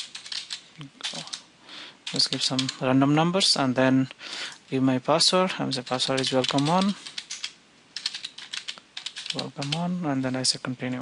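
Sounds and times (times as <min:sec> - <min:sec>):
computer keyboard keystrokes: 0:00.0 - 0:01.4, 0:02.0 - 0:02.8, 0:05.9 - 0:09.8.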